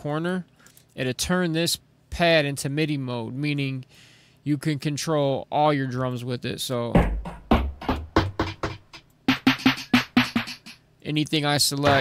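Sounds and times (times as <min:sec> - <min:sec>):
deep kick drum: 0:07.0 - 0:09.4
drum hits: 0:07.0 - 0:10.8.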